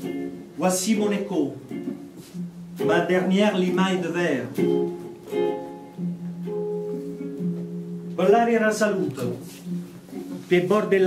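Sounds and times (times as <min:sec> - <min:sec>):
plucked guitar notes: 0:00.0 - 0:11.0.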